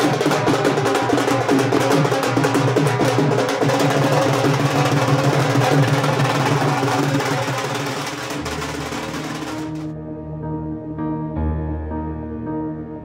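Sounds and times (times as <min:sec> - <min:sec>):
dhol drums fast rhythm: 0:00.0 - 0:09.9.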